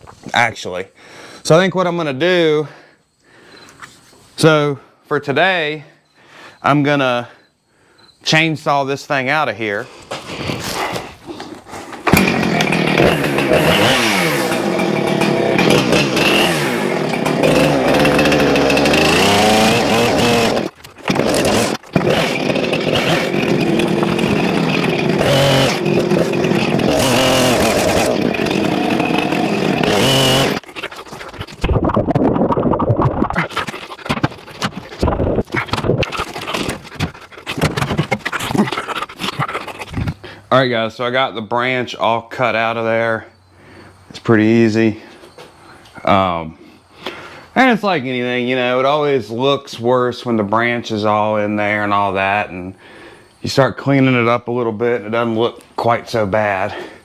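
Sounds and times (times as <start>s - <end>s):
chainsaw cutting wood: 12.0s - 31.6s, 33.4s - 39.5s.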